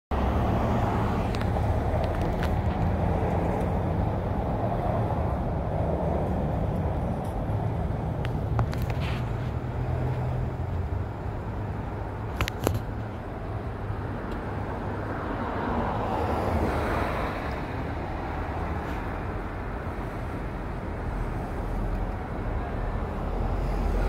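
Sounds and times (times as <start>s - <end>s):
traffic engine rumble: 0.1s - 24.0s.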